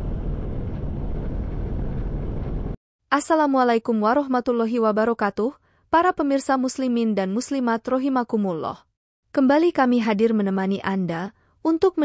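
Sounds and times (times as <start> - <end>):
steady low rumble: 0.0 - 2.8.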